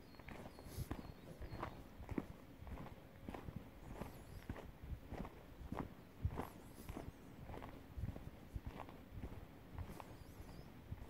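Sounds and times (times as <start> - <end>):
footsteps on gravel: 0.2 - 11.0.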